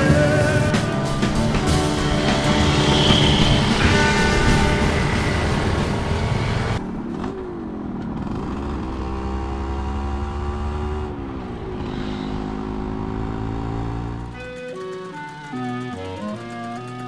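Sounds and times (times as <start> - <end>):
music: 0.0 - 6.8, 11.6 - 17.0
motorcycle engine running: 0.0 - 17.0.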